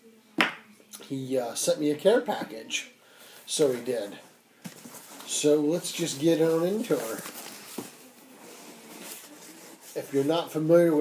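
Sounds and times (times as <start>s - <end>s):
cardboard rustling: 4.7s - 10.5s.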